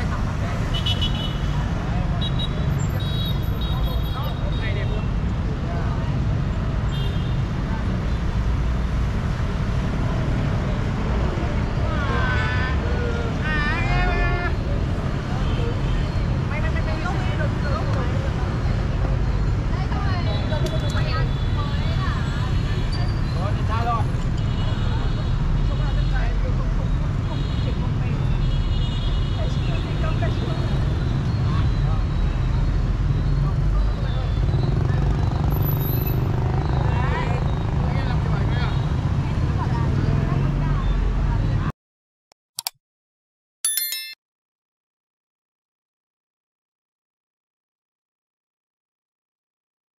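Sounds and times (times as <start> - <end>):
motorbikes and cars rumbling: 0.0 - 41.7
short high-pitched tones: 43.7 - 44.2.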